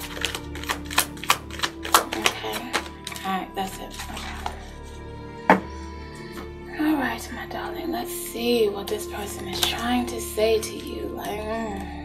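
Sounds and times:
cards being shuffled: 0.0 - 3.3
soft background music: 0.0 - 12.0.

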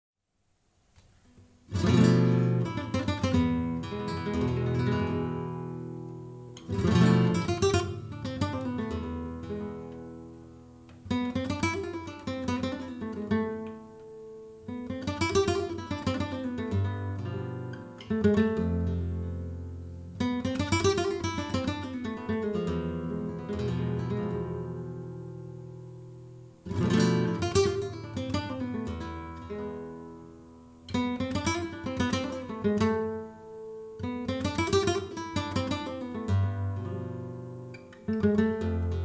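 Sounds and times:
solo flamenco guitar: 0.9 - 39.0.

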